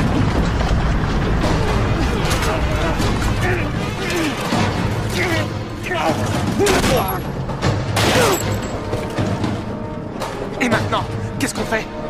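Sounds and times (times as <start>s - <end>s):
low rumble: 0.0s - 6.6s
film music: 0.0s - 12.0s.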